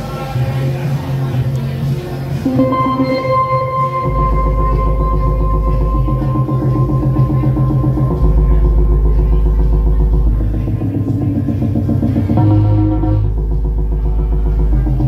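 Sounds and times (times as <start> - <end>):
live band music: 2.4 - 8.0
deep held bass note: 2.4 - 15.0.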